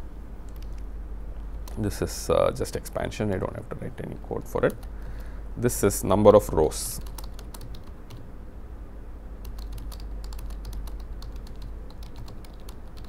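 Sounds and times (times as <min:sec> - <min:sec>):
typing on computer keyboard: 0:07.0 - 0:08.2, 0:09.4 - 0:13.0.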